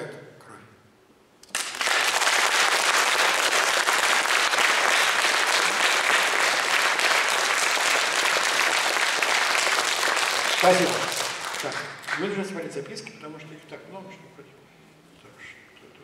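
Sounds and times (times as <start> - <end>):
audience applauding: 1.4 - 12.4.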